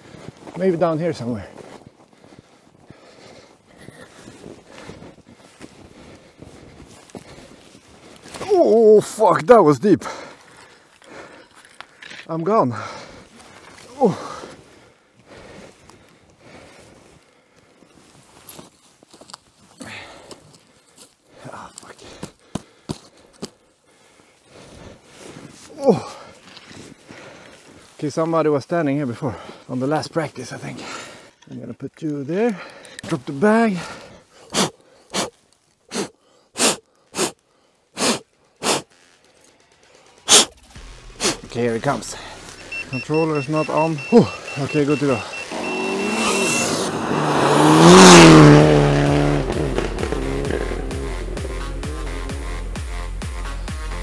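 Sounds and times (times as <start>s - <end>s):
footsteps through deep snow: 0.0s - 11.4s, 12.6s - 31.3s, 38.1s - 52.4s
person breathing hard in puffs: 1.5s - 8.3s, 10.0s - 18.2s, 19.7s - 28.0s, 30.7s - 31.4s, 33.8s - 39.0s.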